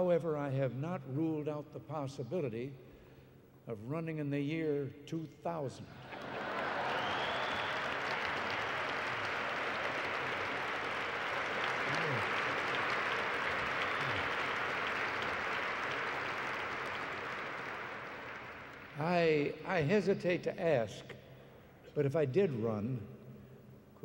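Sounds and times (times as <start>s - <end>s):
audience applauding: 6.0s - 19.4s.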